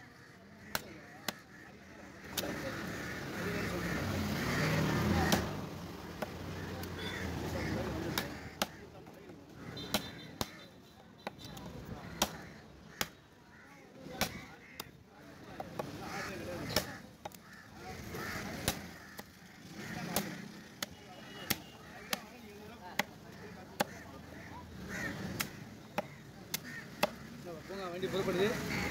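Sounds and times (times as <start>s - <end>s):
murmur of voices: 0.0s - 28.9s
cleaver chopping on wooden block: 8.1s - 8.7s, 12.1s - 12.4s, 14.2s - 14.9s, 25.2s - 27.3s.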